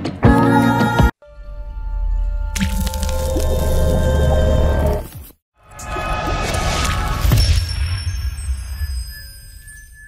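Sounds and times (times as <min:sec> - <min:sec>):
wet splash: 0:02.6 - 0:03.8.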